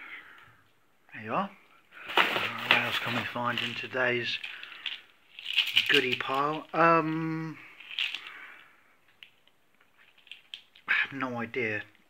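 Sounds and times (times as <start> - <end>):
man talking: 1.1 - 1.6, 2.2 - 4.5, 5.7 - 7.7, 10.9 - 12.0
faint plastic clicks: 8.0 - 10.9.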